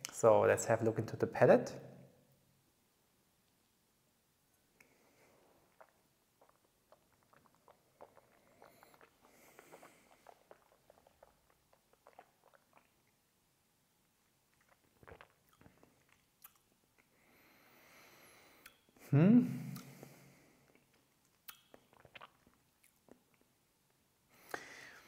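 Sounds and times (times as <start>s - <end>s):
wet mouth sounds and lip smacks: 5.7s - 13.2s, 14.5s - 17.1s, 18.6s - 18.9s, 19.7s - 20.1s, 20.7s - 23.5s.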